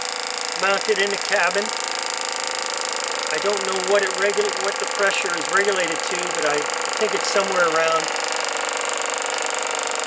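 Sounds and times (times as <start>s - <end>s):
model motor mechanical chatter: 0.0s - 10.0s.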